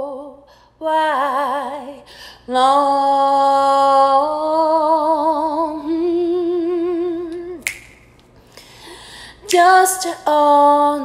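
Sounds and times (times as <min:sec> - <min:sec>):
finger snap: 0:07.3 - 0:08.7.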